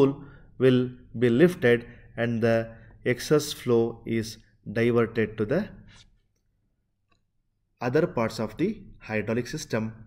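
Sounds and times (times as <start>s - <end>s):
man speaking: 0.0s - 6.0s, 7.8s - 10.0s.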